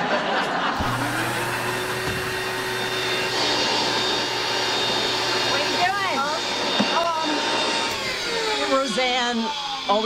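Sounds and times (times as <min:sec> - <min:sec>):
carpet cleaning machine motor: 0:00.8 - 0:10.0.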